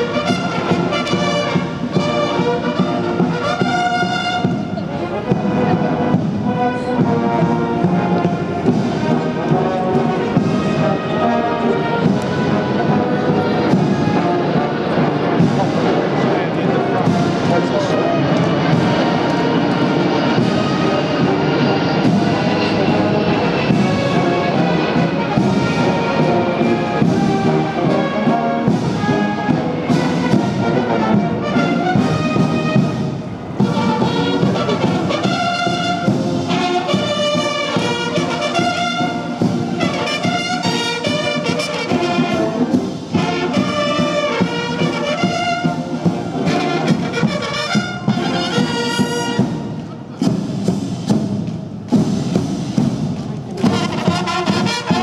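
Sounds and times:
brass band playing a march: 0.0s - 55.0s
drum beats: 0.0s - 55.0s.

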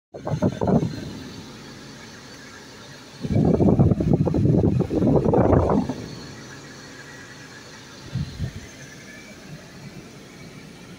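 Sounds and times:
car cabin noise: 0.2s - 10.9s.

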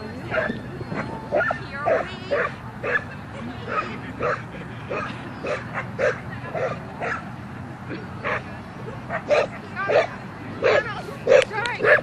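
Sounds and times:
dog barking: 1.3s - 3.0s, 3.7s - 7.2s, 9.1s - 12.0s.

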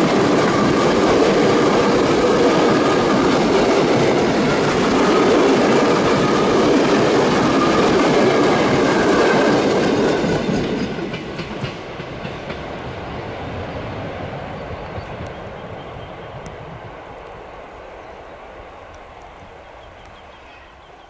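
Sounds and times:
train wheels clattering over rails: 0.0s - 12.9s.

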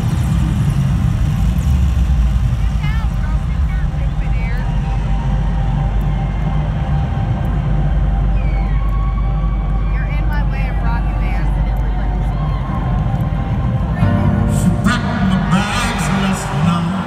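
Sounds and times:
low rumble from speakers: 0.0s - 17.0s
crowd whooping: 4.2s - 10.7s, 11.9s - 17.0s.

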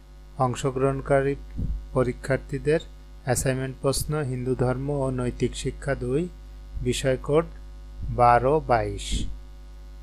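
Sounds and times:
electrical mains hum: 0.0s - 10.0s
man narrating: 0.4s - 9.4s.

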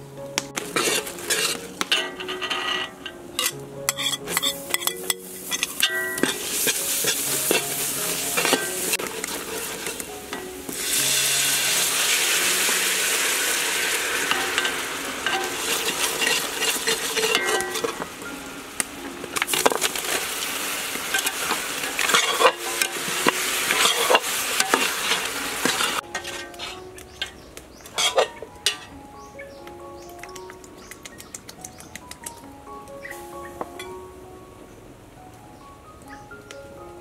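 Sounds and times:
spoon scraping pot: 0.7s - 7.8s, 8.4s - 10.1s, 14.3s - 18.1s, 21.1s - 27.3s, 28.0s - 28.9s
sauce sizzling and bubbling: 3.4s - 28.2s
sharp clicks: 30.1s - 33.0s.

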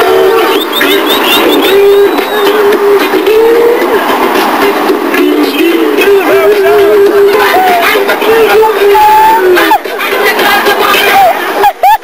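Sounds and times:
high singing voice: 0.0s - 11.5s
loud music with steady beat: 0.0s - 12.0s.

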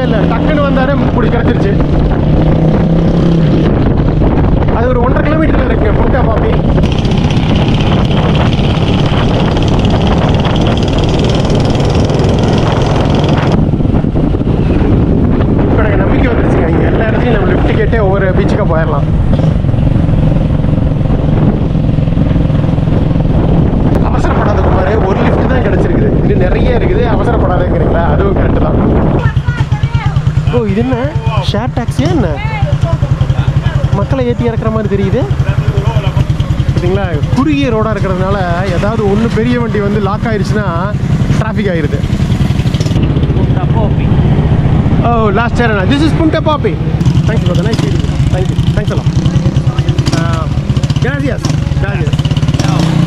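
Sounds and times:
motorcycle engine running: 0.0s - 53.0s
wind rushing over microphone: 0.0s - 53.0s.

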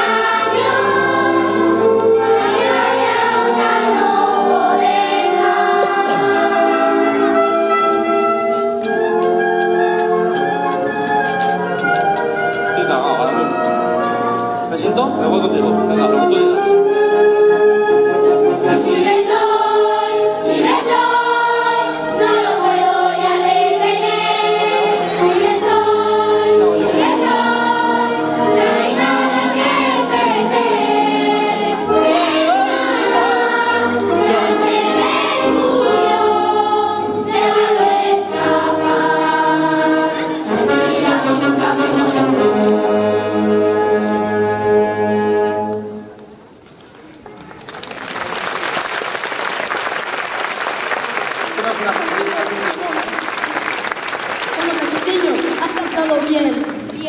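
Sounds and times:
choir singing: 0.0s - 8.3s, 18.2s - 45.7s
live band playing: 5.9s - 19.0s.

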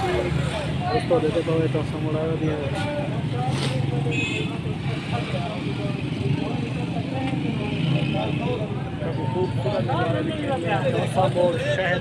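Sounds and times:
people talking: 0.0s - 12.0s
traffic rumble: 0.0s - 12.0s.

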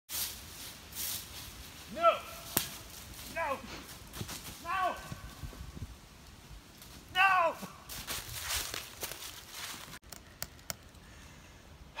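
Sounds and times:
person shouting: 4.6s - 5.2s, 7.1s - 7.8s.

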